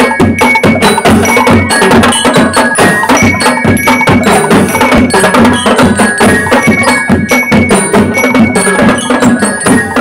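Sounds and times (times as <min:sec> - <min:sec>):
bell-lyre notes ringing: 0:00.0 - 0:10.0
marching drums with cymbals: 0:00.0 - 0:10.0.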